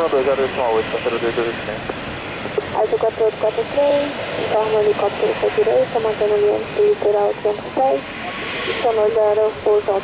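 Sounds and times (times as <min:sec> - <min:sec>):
radio speech: 0:00.0 - 0:01.8, 0:02.6 - 0:08.0
steady rushing noise: 0:00.0 - 0:10.0.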